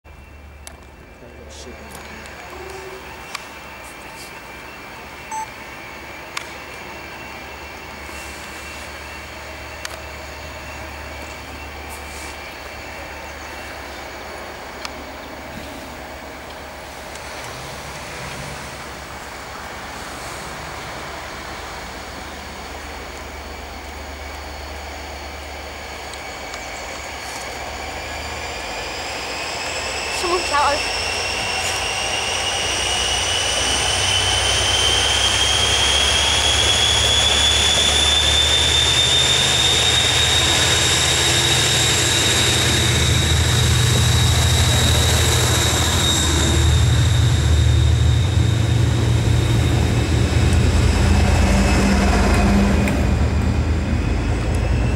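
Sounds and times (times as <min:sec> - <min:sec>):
diesel locomotive engines droning: 0:00.0 - 0:54.9
rising whine: 0:00.1 - 0:54.9.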